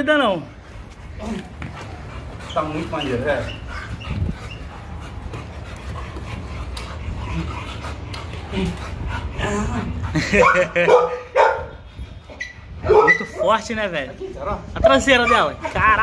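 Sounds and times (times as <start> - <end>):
dog whining and yipping: 1.8 - 5.0, 12.3 - 13.5, 15.1 - 15.6.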